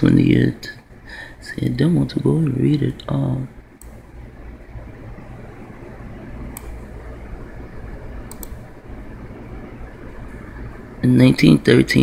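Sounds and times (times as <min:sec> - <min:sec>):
low background hum: 0:00.0 - 0:12.0
computer mouse clicks: 0:03.8 - 0:04.0, 0:06.5 - 0:06.9, 0:08.2 - 0:08.7.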